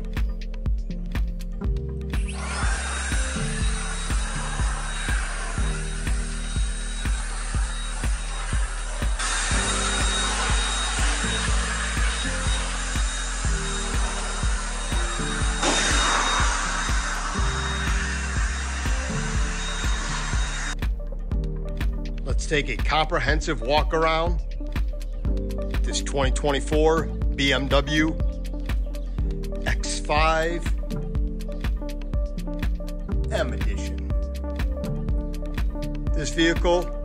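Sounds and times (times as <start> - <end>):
electric blower rush of air: 2.0 - 20.9.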